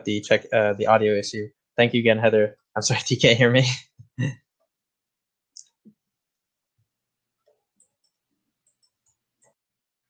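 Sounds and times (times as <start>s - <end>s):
man speaking: 0.0s - 4.4s
faint clicks: 7.4s - 9.6s.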